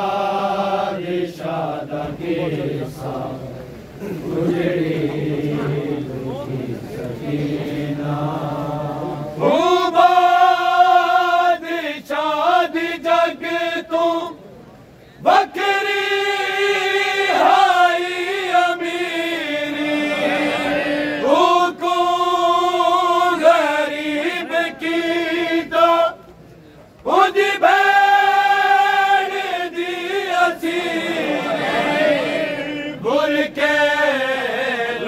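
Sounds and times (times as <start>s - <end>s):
men chanting in unison: 0.0s - 14.4s, 15.2s - 26.2s, 27.0s - 35.0s.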